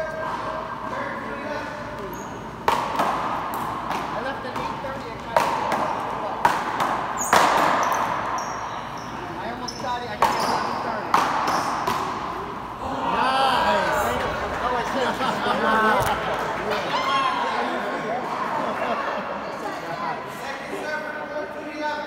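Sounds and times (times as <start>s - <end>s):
wooden paddles striking ball: 2.6s - 4.7s, 11.1s - 12.4s
murmur of voices: 8.8s - 22.0s.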